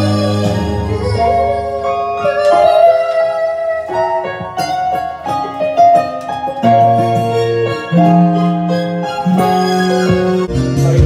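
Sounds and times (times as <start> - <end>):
karaoke backing music: 0.0 - 11.0.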